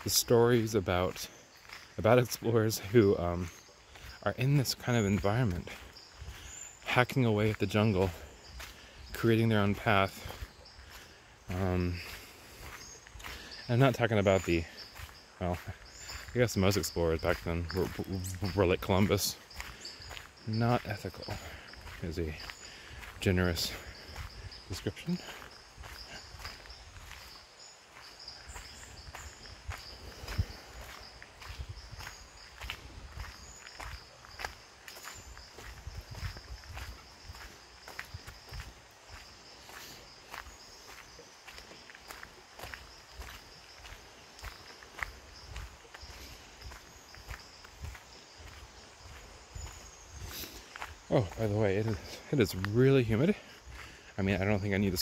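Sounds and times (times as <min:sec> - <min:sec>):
footsteps on gravel: 0:00.0 - 0:55.0
high-pitched insect chorus: 0:00.0 - 0:55.0.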